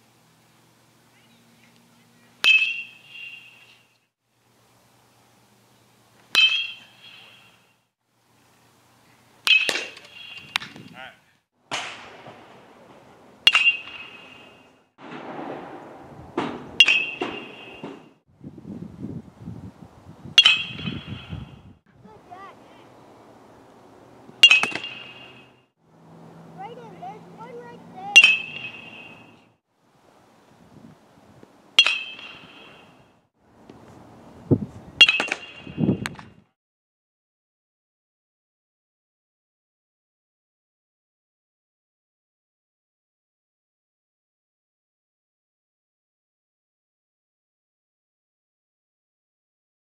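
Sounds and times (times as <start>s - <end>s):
bat hitting ball pings: 2.4s - 3.9s, 6.3s - 7.7s, 9.4s - 10.8s, 13.4s - 14.7s, 15.6s - 18.2s, 20.4s - 21.6s, 24.3s - 25.6s, 26.6s - 29.5s, 31.8s - 33.1s, 35.0s - 36.2s
dull thump: 15.0s - 18.1s.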